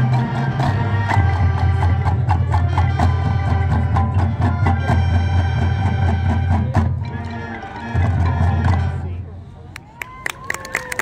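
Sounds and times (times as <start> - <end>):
marching band playing: 0.0 - 9.4.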